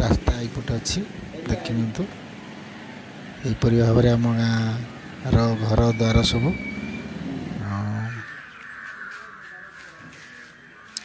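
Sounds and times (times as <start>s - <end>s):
man speaking: 0.0s - 2.2s, 3.4s - 6.6s
bird calling: 1.5s - 11.0s.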